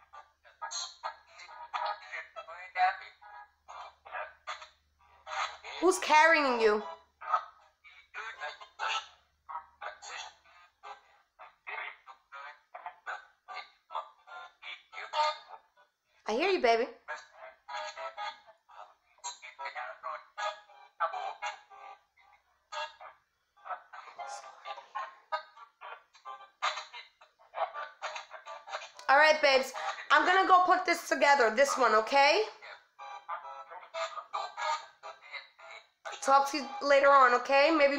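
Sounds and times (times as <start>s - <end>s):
choppy voice and tone fragments: 0.0s - 7.4s, 22.7s - 37.9s.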